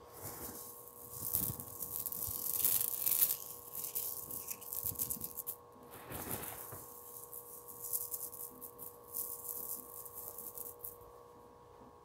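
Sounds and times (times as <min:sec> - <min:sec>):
gravel pellets rattling onto rug: 0:00.0 - 0:11.0.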